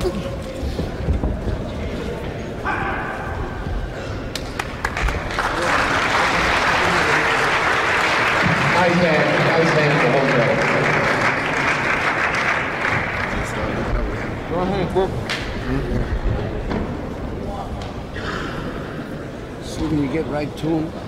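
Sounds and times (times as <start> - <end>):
spectators applauding: 4.4 - 14.3.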